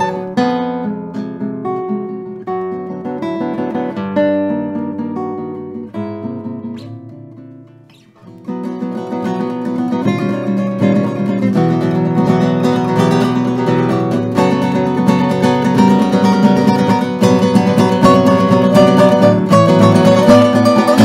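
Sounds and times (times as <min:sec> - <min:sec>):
classical guitar playing: 0:00.0 - 0:21.0.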